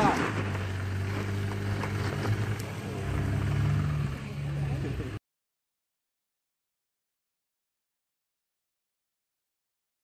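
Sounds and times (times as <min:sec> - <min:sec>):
truck engine running at low speed: 0:00.0 - 0:05.2.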